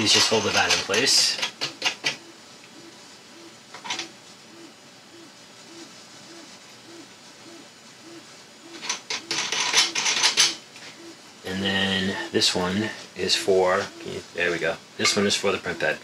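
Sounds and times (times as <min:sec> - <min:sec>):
small hard parts clicking and rattling: 0:00.0 - 0:02.2, 0:08.8 - 0:10.6.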